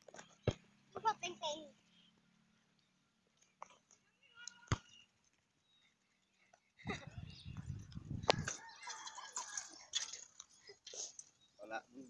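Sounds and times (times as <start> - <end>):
wind rumble on microphone: 6.9 - 8.6.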